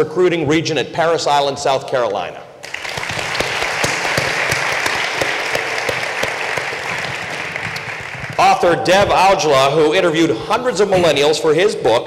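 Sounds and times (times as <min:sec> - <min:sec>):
audience applause: 0:02.6 - 0:08.8.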